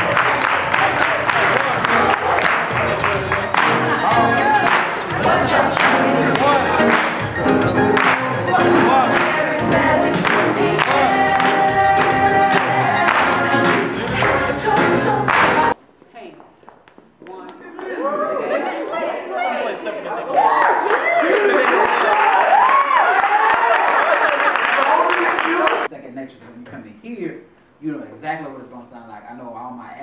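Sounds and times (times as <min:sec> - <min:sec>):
rhythmic hand clapping: 0:00.0 - 0:15.8, 0:20.9 - 0:25.9
group singing over music: 0:00.2 - 0:15.8.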